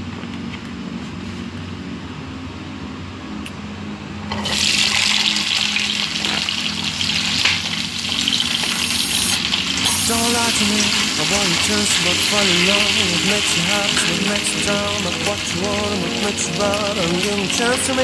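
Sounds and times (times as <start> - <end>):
vegetables sizzling in hot oil: 4.4 - 18.0.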